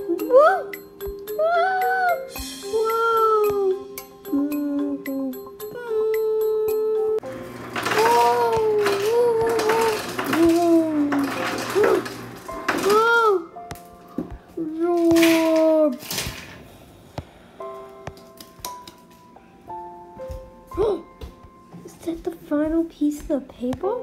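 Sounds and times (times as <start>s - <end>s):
child making wordless vocal cries: 0.0s - 7.2s, 20.7s - 21.1s
background music with held notes: 0.0s - 15.7s, 17.2s - 24.0s.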